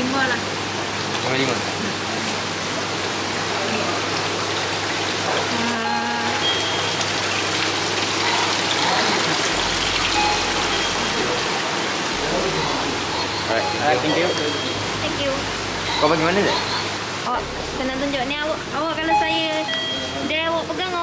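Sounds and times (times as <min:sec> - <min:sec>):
running water rushing and splashing: 0:00.0 - 0:21.0.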